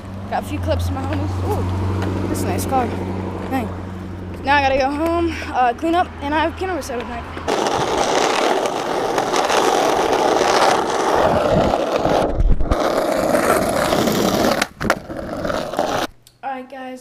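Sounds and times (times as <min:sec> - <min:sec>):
skateboard wheels rolling on asphalt: 0:00.0 - 0:16.1
skateboard sharp clacks: 0:07.0 - 0:16.1.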